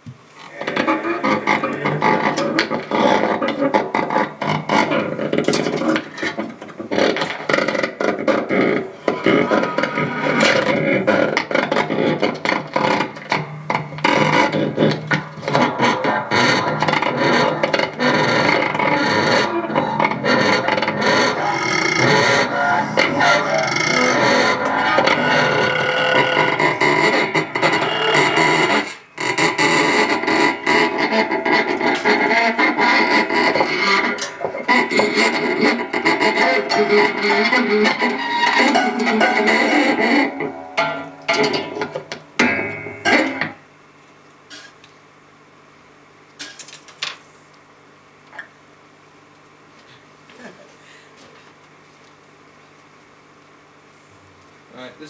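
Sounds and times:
distorted noise music: 0.4s - 43.9s.

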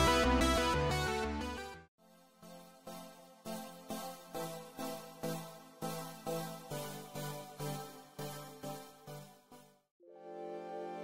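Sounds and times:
pulsing music loop: 2.6s - 9.7s
music with sustained chords: 10.0s - 11.0s.

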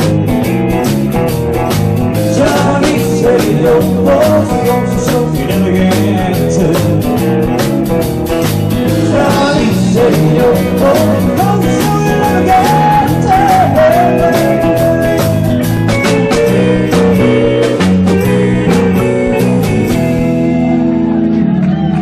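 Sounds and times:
bass guitar: 0.0s - 22.0s
drums: 0.0s - 22.0s
electric guitar: 0.0s - 22.0s
person singing: 2.2s - 7.4s, 8.8s - 17.8s.

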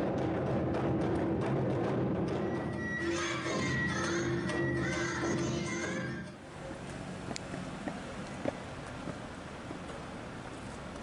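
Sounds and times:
taiko drums: 0.0s - 3.7s
live dance music: 2.5s - 6.4s.

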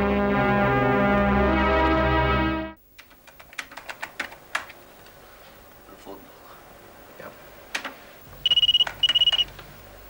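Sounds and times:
keyboard typing: 3.0s - 4.8s, 8.5s - 9.6s.

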